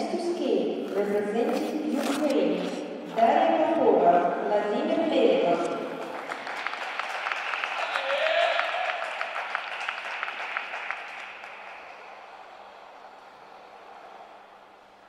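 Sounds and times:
audience clapping: 6.0 - 14.3.

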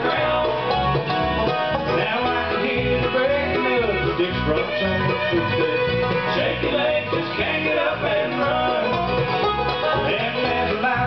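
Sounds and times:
acoustic guitar: 0.0 - 11.0
banjo: 0.0 - 11.0
bass: 0.0 - 11.0
fiddle: 0.0 - 11.0
mandolin: 0.0 - 11.0.

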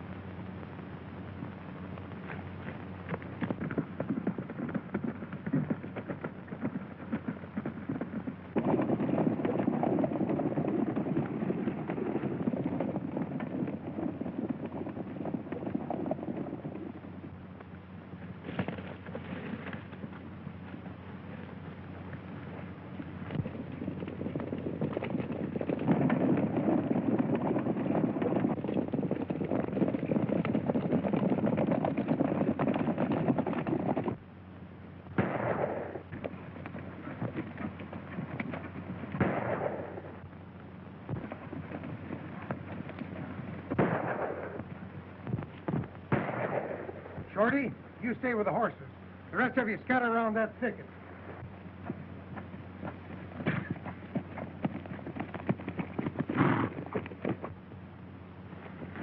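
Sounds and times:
film soundtrack hum: 0.0 - 59.0
horses galloping: 0.0 - 59.0
gunshots: 35.1 - 36.2, 39.1 - 40.2, 43.7 - 44.7, 46.1 - 47.6.

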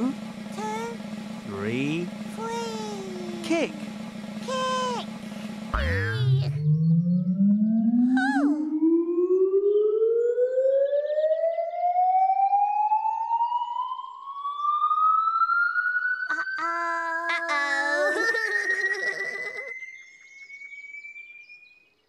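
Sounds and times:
short wavering voice cry: 0.0 - 1.0, 2.4 - 3.8, 4.4 - 5.1, 5.8 - 6.6, 8.0 - 8.7, 16.3 - 19.7
rising whistle tone: 19.8 - 21.8.

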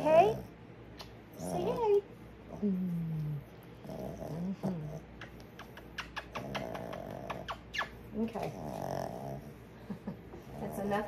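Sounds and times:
kissing smacks: 0.9 - 1.2, 5.1 - 8.0.

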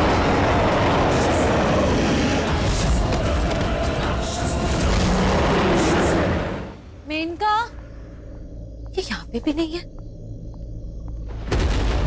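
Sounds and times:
monster roaring: 4.5 - 6.7.

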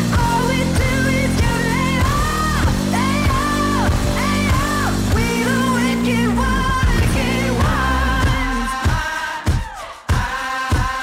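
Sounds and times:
song with sung vocals over a beat: 0.0 - 11.0.

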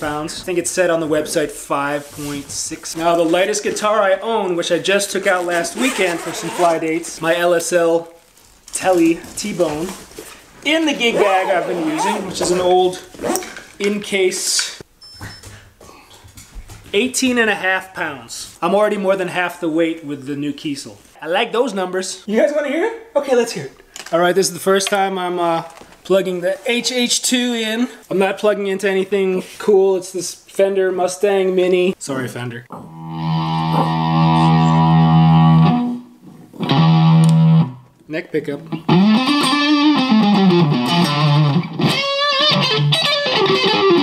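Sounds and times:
padded gig bag handling: 5.2 - 6.8
overdriven electric guitar chords: 32.9 - 37.8, 38.8 - 44.0.

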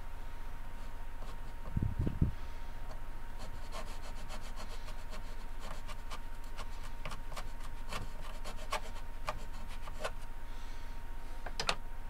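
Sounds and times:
small saw cutting wood: 3.4 - 10.2.

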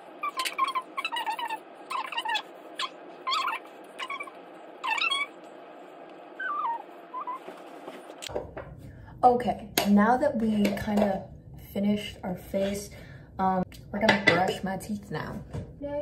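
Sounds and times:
pet's high-pitched cries: 0.2 - 5.4, 6.4 - 7.4.

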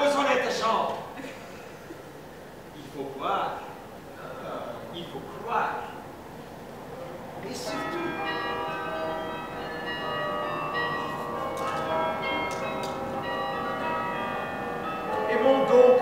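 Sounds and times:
bells ringing: 7.5 - 16.0
man's loud voice: 15.2 - 16.0.

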